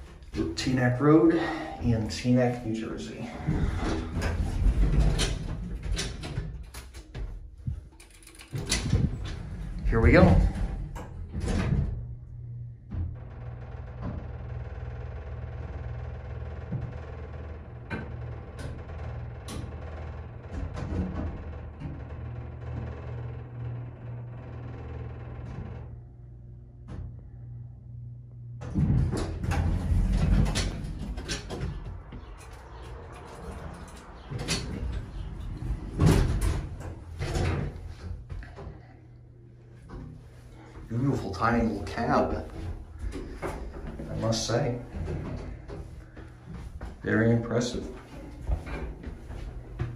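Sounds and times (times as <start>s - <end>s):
elevator doors sliding open: 0.0s - 7.1s, 8.0s - 26.2s, 28.6s - 39.1s
elevator pump motor hum: 7.6s - 49.9s.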